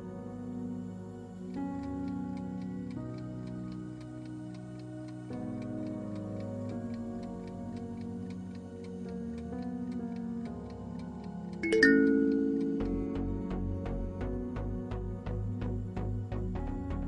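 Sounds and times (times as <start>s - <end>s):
soft music of held chords: 0.0s - 17.0s
clock-like timer ticking: 1.5s - 14.3s.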